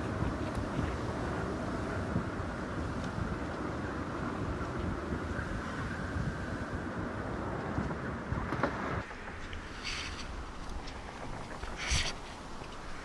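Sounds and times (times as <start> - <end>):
strong wind buffeting microphone: 0.0 - 13.0.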